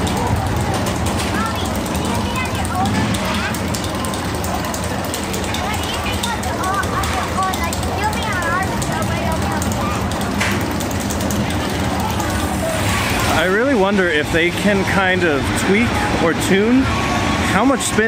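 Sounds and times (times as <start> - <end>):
roller coaster running on track: 0.0 - 18.0
voices: 0.0 - 18.0.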